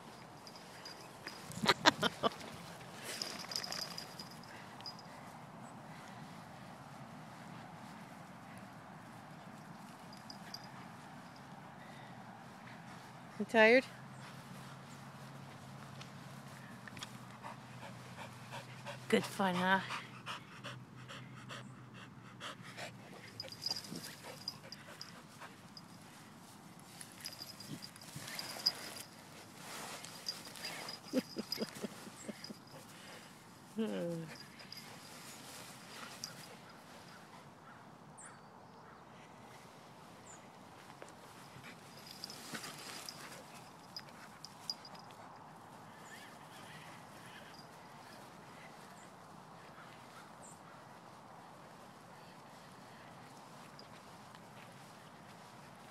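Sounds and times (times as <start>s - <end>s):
dog panting: 17.3s - 25.9s.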